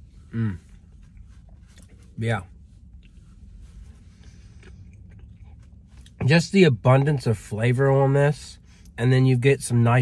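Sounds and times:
low steady hum: 0:00.0 - 0:10.0
person chewing food: 0:00.3 - 0:06.2.

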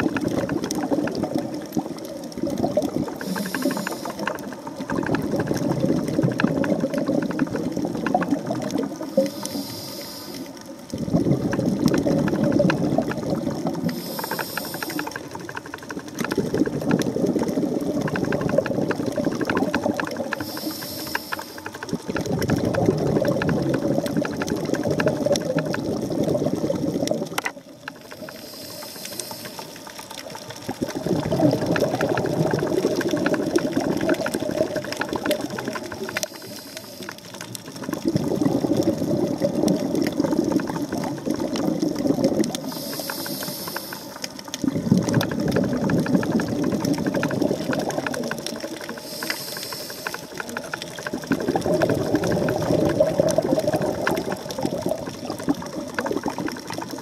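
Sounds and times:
bubbling exhaust: 0:00.0 - 0:57.0
regulator hiss on inhale: 0:03.1 - 0:05.2, 0:09.0 - 0:10.7, 0:13.8 - 0:16.4, 0:20.2 - 0:21.8, 0:28.0 - 0:30.3, 0:35.7 - 0:37.7, 0:42.4 - 0:44.5, 0:48.6 - 0:50.7.

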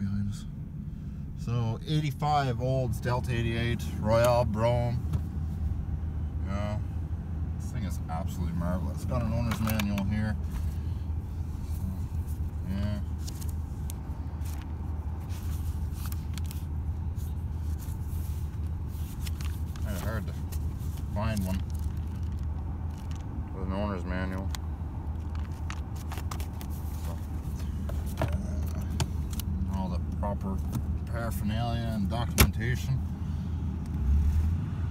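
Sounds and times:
car engine idling: 0:00.0 - 0:34.0
pages rustling: 0:13.2 - 0:23.3, 0:25.2 - 0:29.4.

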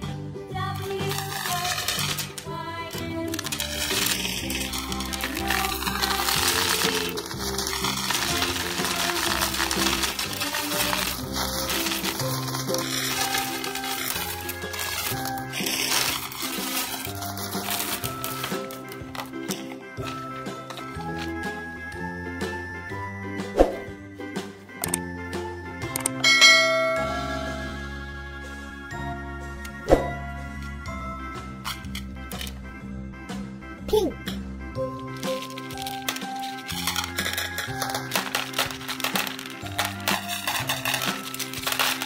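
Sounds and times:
instrumental music with held notes: 0:00.0 - 0:42.0
candies rattling and clicking: 0:00.6 - 0:22.8, 0:31.5 - 0:32.7, 0:34.8 - 0:42.0
bell-like chime: 0:26.2 - 0:28.0.

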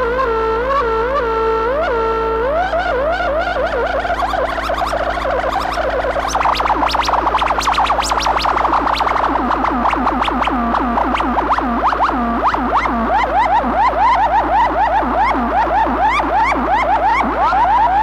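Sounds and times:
synthesizer arpeggio: 0:00.0 - 0:18.0.

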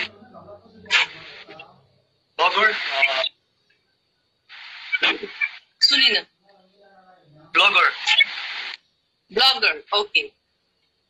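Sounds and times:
person talking on a call: 0:00.0 - 0:03.3, 0:04.5 - 0:08.7, 0:09.3 - 0:10.3
steady line hiss: 0:00.0 - 0:11.0.

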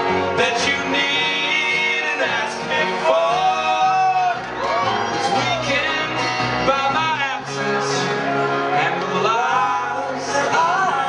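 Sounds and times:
man singing: 0:00.0 - 0:04.4, 0:05.2 - 0:11.0
strummed acoustic guitar: 0:00.0 - 0:11.0.

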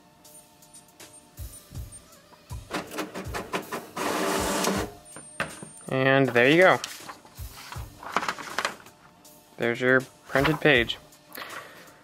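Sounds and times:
printer clicking and whirring: 0:02.6 - 0:05.0.

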